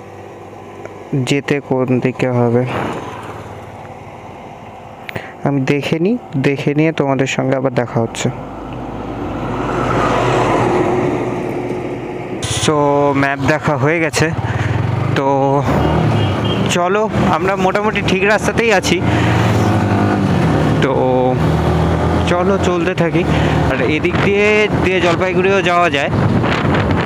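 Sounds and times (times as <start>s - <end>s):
motorcycle engine running: 0.0s - 5.1s, 11.4s - 25.0s
road vehicle noise: 0.0s - 27.0s.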